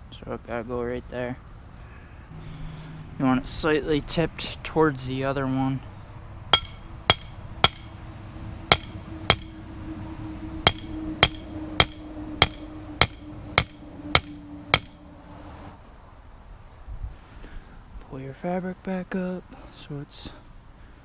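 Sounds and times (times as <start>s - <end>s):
hammer striking metal stake: 6.6s - 8.0s, 8.7s - 9.6s, 10.7s - 15.0s.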